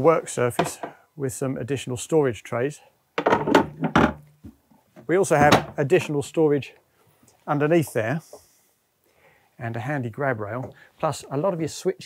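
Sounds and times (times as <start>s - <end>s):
hard cover knocking and scraping: 3.2s - 4.6s, 5.4s - 5.8s.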